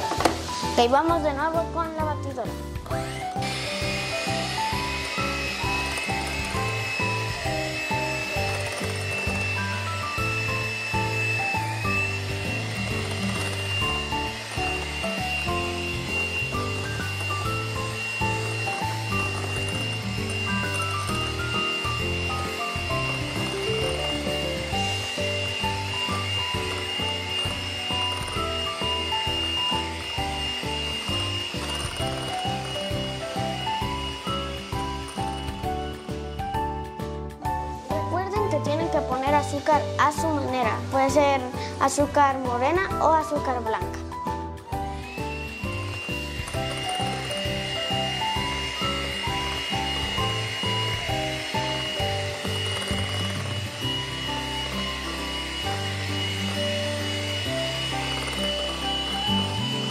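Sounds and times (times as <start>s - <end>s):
electric hand mixer whining: 0.0s - 59.9s.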